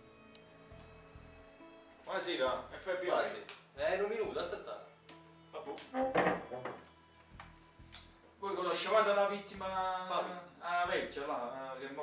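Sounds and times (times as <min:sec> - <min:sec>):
faint background music: 0:00.0 - 0:12.0
wooden chair scraping: 0:05.8 - 0:06.8.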